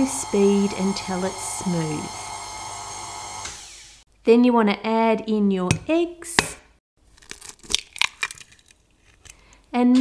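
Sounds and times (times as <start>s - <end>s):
eggshell cracking: 7.0s - 9.4s.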